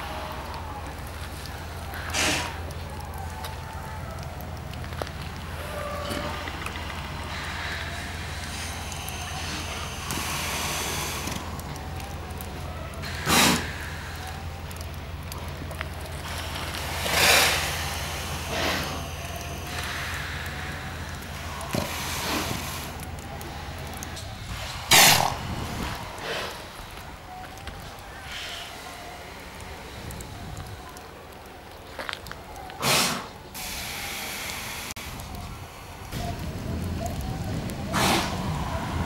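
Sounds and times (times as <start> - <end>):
steady low rumble: 0.0 - 32.6, 33.4 - 39.0
seals snorting: 2.0 - 2.6, 13.0 - 14.2, 16.3 - 23.0, 24.8 - 26.8, 32.8 - 33.3, 37.9 - 38.6.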